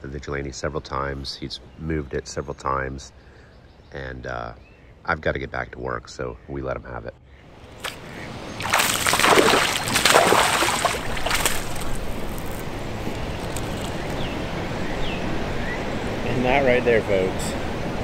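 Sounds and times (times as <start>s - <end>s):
water lapping: 7.5s - 16.2s
fish splashing in water: 7.6s - 14.2s.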